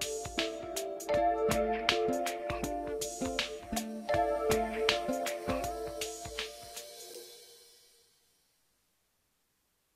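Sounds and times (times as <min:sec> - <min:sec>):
music chord ringing out: 0:00.0 - 0:07.7
cymbal wash: 0:02.9 - 0:08.3.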